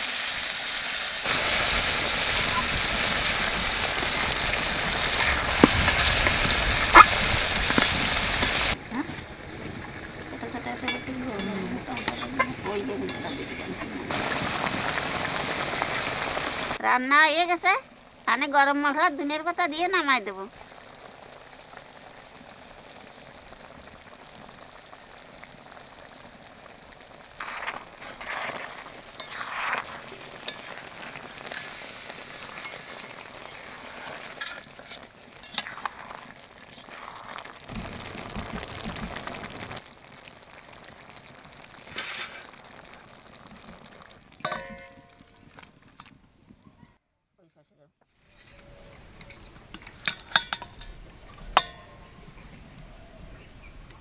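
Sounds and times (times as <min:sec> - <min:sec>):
curry sizzling in a pan: 0:00.0 - 0:46.0
spoon scraping while stirring: 0:27.4 - 0:37.4
spoon clinking on steel bowl: 0:49.2 - 0:51.0.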